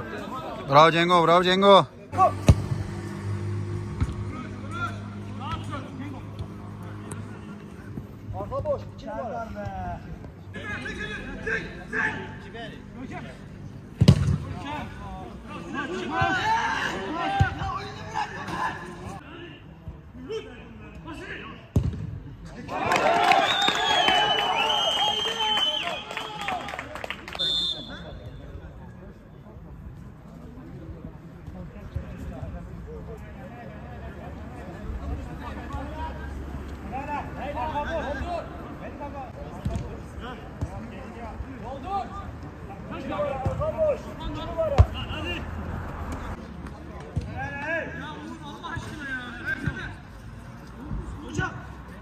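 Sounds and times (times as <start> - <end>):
players shouting: 0.0 - 7.5, 14.5 - 19.0, 22.6 - 27.8, 41.6 - 46.4
men shouting and cheering: 22.6 - 27.0.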